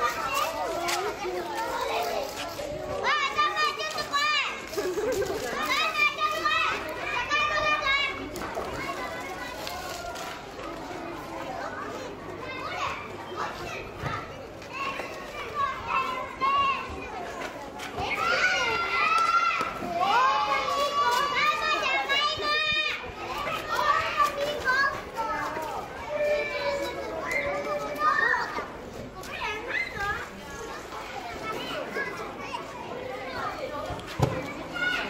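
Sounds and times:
children calling and shouting: 0.0 - 35.0.

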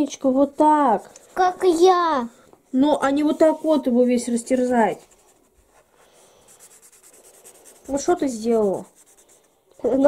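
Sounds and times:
marker scribbling on paper: 2.7 - 10.0.

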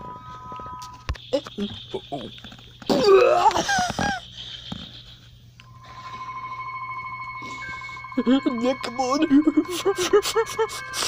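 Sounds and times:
steady high tone: 0.0 - 2.3, 5.6 - 11.0
second higher steady tone: 5.7 - 11.0.

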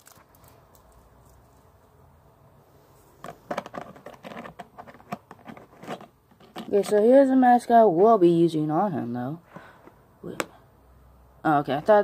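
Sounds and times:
person speaking: 6.5 - 9.5, 10.2 - 10.6, 11.4 - 12.0.

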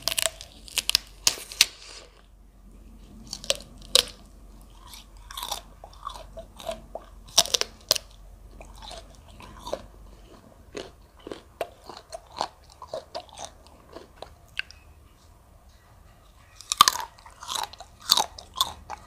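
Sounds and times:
crisp juicy crunching bites: 0.0 - 2.2, 3.2 - 14.8, 16.5 - 19.0
wet chewing with clicks: 3.2 - 15.2.

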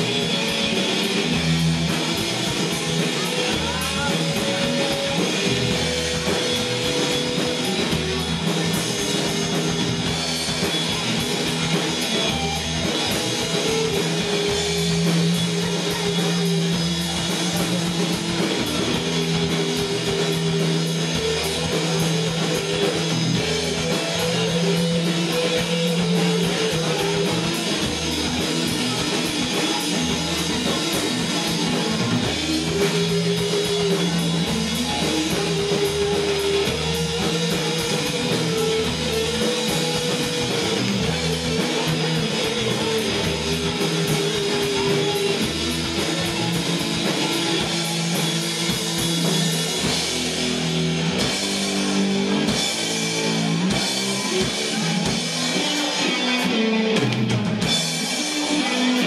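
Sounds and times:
guitar long held notes: 0.0 - 59.0
rock band playing: 0.0 - 59.0.

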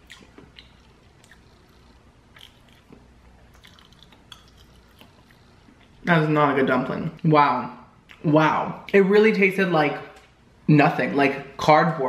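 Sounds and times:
person chewing: 0.0 - 6.0.

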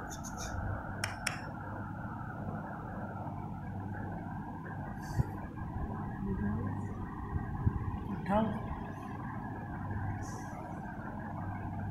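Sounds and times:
low background noise: 0.0 - 11.9
sharp click: 1.0 - 1.5.

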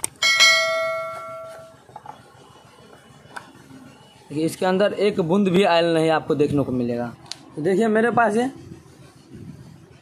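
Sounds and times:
struck metal object ringing: 0.2 - 1.8.

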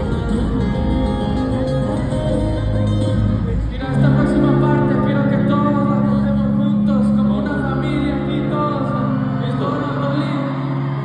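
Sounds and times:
live band music over sound system: 0.0 - 11.0.

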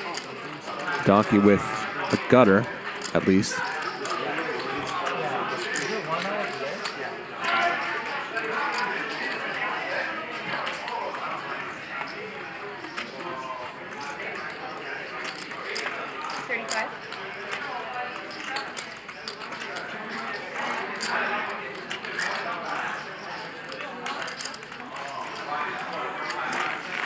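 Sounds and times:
poker chips clicking: 0.1 - 7.0, 15.2 - 27.0
indistinct voices talking: 0.9 - 5.4.

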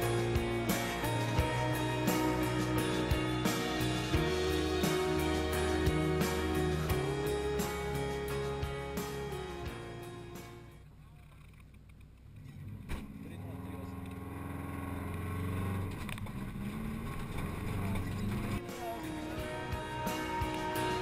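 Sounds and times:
background music: 0.0 - 10.9, 18.4 - 21.0
car engine running: 0.0 - 21.0.

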